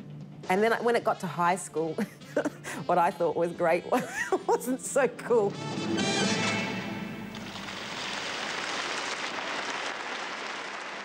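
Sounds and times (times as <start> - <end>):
live song music: 5.5 - 8.0
audience applause: 7.3 - 11.0.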